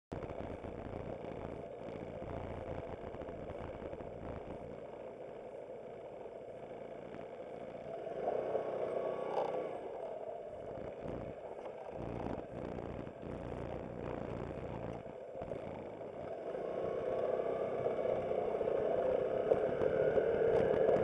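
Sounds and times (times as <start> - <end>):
scooter engine running: 0.2 - 21.0.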